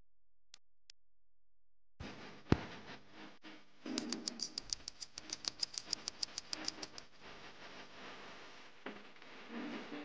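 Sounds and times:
rapid light clicks: 4.0 - 7.1.

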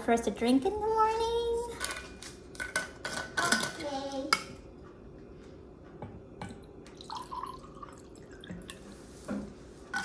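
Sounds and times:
water trickling into mug: 6.9 - 8.8.

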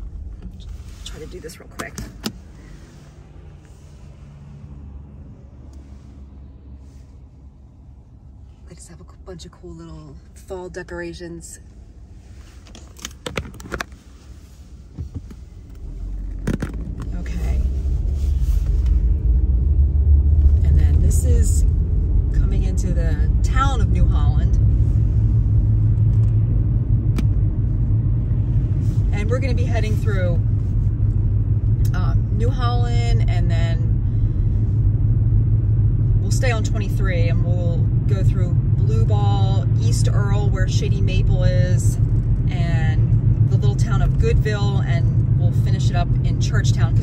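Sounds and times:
car engine and tyres rumbling: 0.0 - 47.0.

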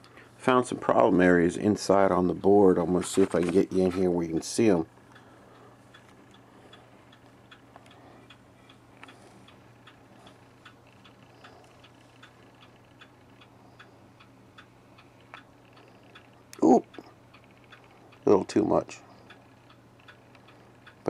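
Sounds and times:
faint light ticking: 0.0 - 21.0
steady low hum: 0.0 - 21.0.

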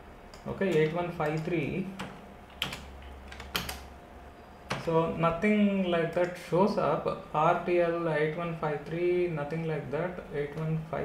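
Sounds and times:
steady low hum: 0.0 - 11.0
keyboard key clicks: 0.3 - 3.9.

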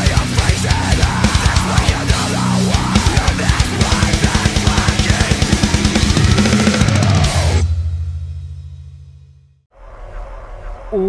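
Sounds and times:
fast kick-drum beat: 0.0 - 7.6
metalcore backing track: 0.0 - 9.1.

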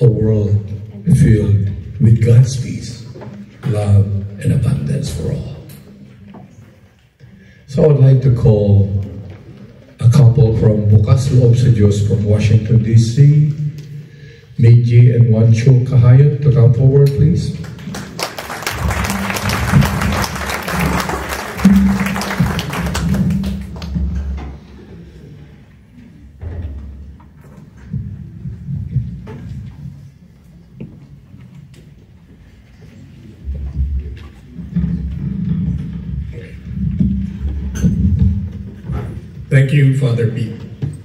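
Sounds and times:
audience applauding: 17.6 - 24.3
music playing: 18.7 - 24.2.

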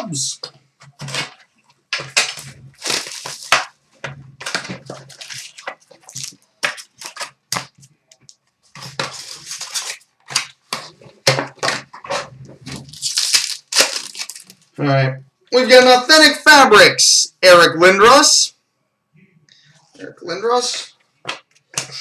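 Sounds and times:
plastic wrapping torn and crinkled: 1.0 - 3.8, 4.4 - 10.9, 12.1 - 14.8.

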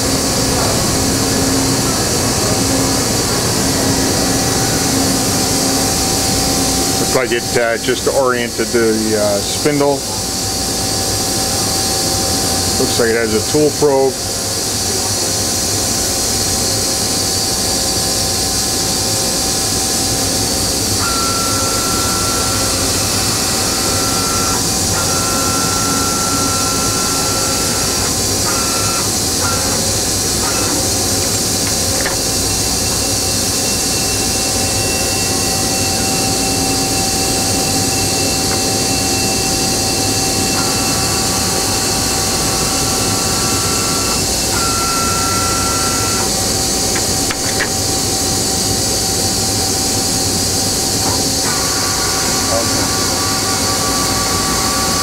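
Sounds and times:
machine humming and hissing: 0.0 - 55.0
servomotor whine: 0.0 - 55.0.

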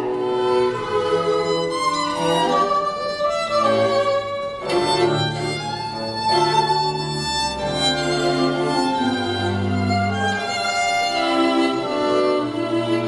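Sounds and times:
string quartet playing held chords: 0.0 - 13.0.

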